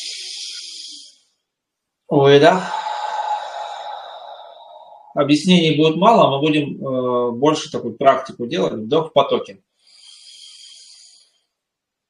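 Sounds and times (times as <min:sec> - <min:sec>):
man breathing in deeply: 0:02.4 - 0:05.2, 0:09.8 - 0:11.4.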